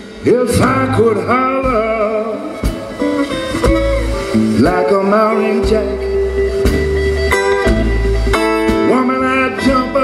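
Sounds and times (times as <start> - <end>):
blues band playing: 0.0 - 10.0.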